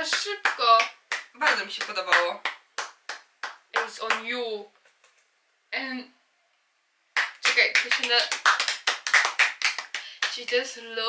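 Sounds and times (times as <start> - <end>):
people clapping hands: 0.0 - 4.3, 7.2 - 10.7.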